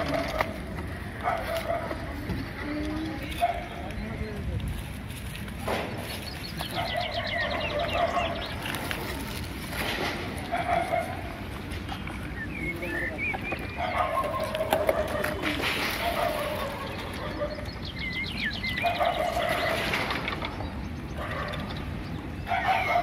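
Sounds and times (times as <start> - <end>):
birds chirping: 0.0 - 4.6, 6.0 - 9.6, 10.3 - 23.0.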